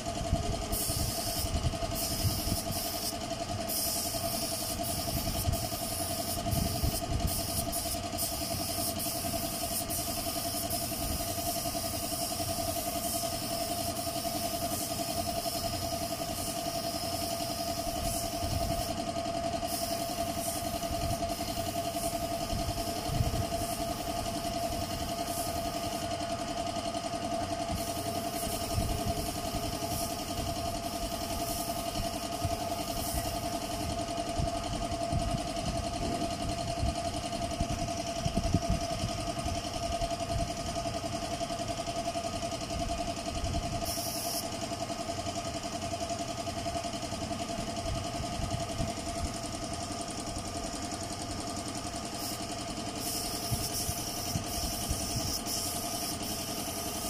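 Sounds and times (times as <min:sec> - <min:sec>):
paint spray gun hissing: 0:00.0 - 0:38.1, 0:40.8 - 0:57.0
motor droning: 0:27.3 - 0:38.5.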